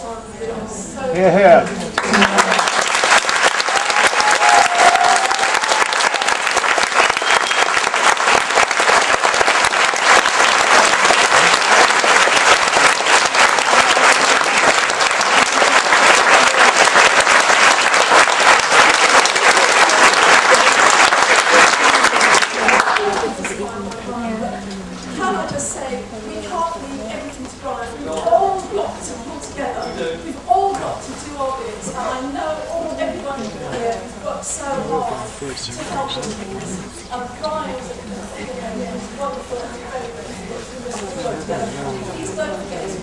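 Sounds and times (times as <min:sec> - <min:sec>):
audience applauding: 0:02.0 - 0:23.6.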